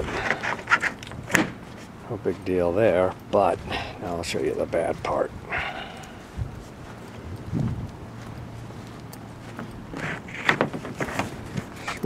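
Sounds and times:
footsteps on grass and dirt: 0.0s - 12.0s.

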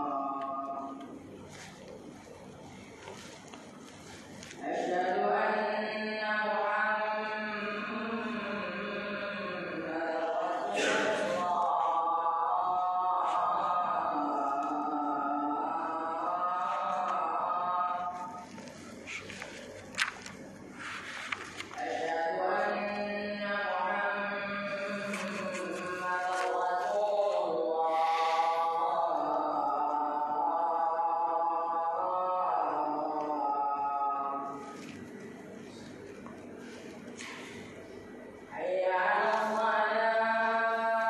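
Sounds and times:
man chanting: 0.0s - 1.8s, 4.6s - 20.2s, 21.4s - 35.1s
low room noise: 0.0s - 41.0s.

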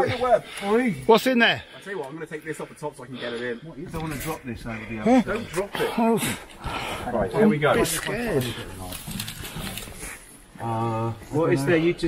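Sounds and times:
rustling through undergrowth: 7.6s - 10.5s.

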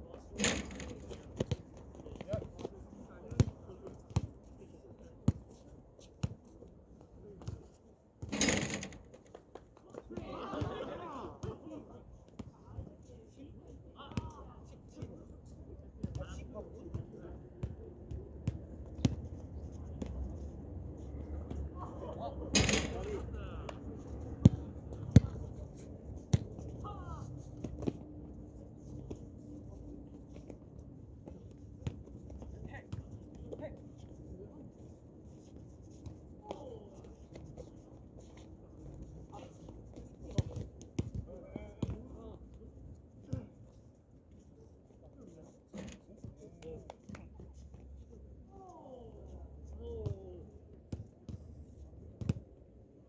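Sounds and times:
players' voices: 0.0s - 5.7s, 9.8s - 18.6s, 19.6s - 47.3s.

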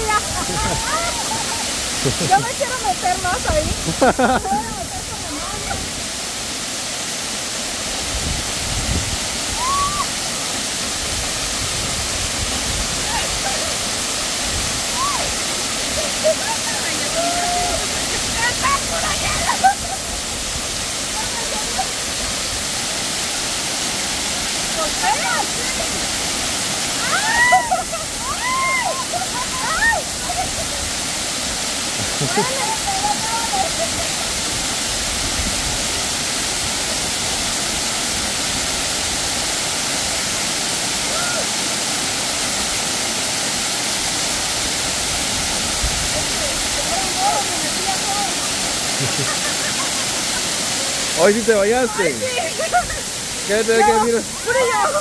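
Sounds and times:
high voices: 0.0s - 5.5s, 46.3s - 55.0s
waterfall pouring onto rocks: 0.0s - 55.0s.

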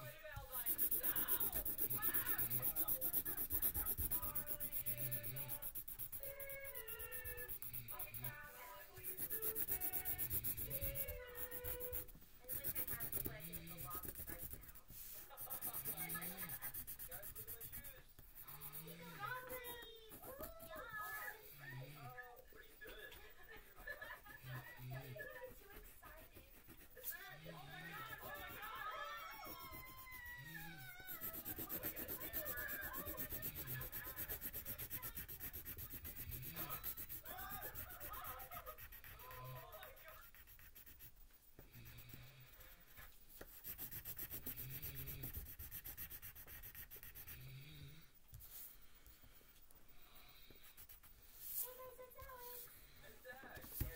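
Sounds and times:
pencil scratching on paper: 0.5s - 21.4s, 22.9s - 47.5s, 50.0s - 52.7s, 53.5s - 53.9s.

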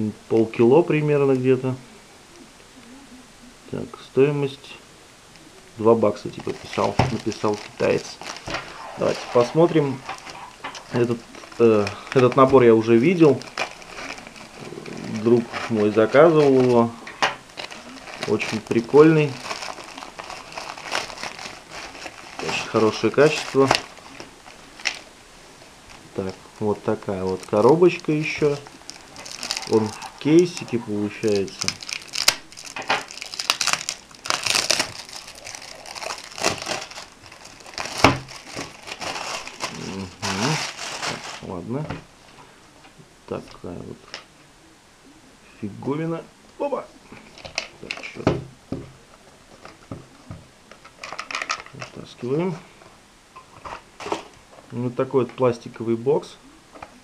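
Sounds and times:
crisp plastic rustle: 5.4s - 42.4s, 47.0s - 55.9s
plastic bag and box handling: 5.8s - 25.1s, 25.8s - 42.1s, 47.2s - 48.3s, 49.5s - 52.6s
packaging knocks and scrapes: 6.4s - 12.7s, 31.3s - 42.0s.

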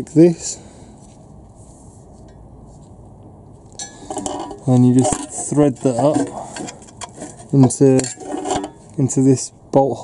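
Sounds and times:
handling small metal parts: 3.6s - 9.0s
light metallic clink: 3.8s - 4.4s.

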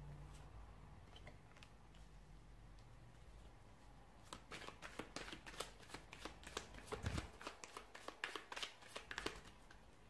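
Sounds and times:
cards being shuffled: 4.3s - 9.8s.

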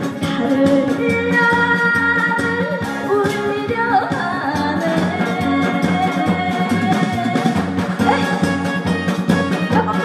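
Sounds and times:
amplified backing music: 0.0s - 10.0s
woman singing into a microphone: 0.0s - 10.0s.

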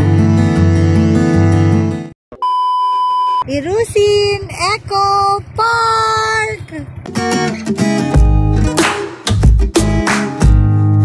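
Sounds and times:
steady electronic beep: 2.3s - 3.5s
background music: 7.2s - 11.0s.

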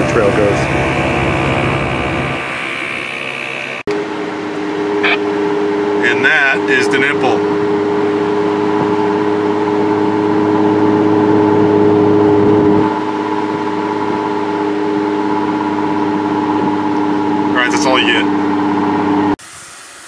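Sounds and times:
car engine and road drone: 0.0s - 19.6s.

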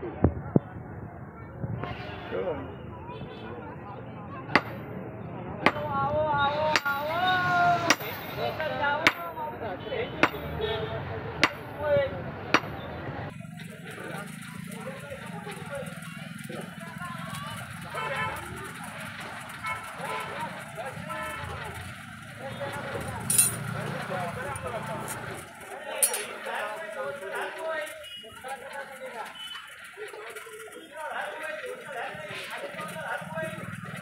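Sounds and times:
people's voices: 0.0s - 34.0s
sledgehammer striking metal on anvil: 6.8s - 7.2s, 7.9s - 8.3s, 11.4s - 11.7s, 12.6s - 12.8s.

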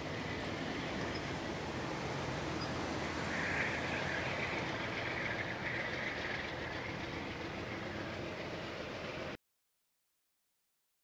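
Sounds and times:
high hiss: 0.0s - 9.2s
train rumbling: 0.0s - 9.4s.

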